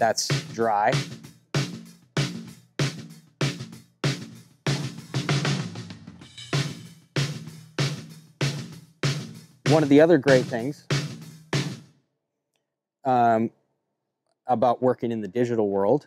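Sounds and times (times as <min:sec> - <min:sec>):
snare drum hits: 0:03.4 - 0:05.8, 0:09.7 - 0:11.8.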